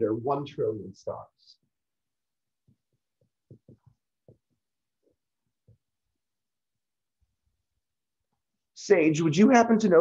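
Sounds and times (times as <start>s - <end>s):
marker tapping on whiteboard: 2.6s - 5.9s.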